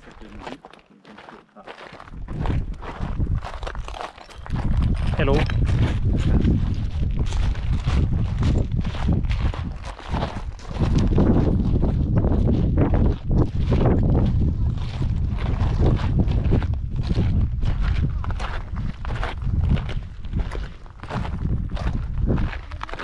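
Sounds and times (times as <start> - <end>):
footsteps crunching on gravel: 0.0 - 23.0
steady low rumble: 2.1 - 23.0.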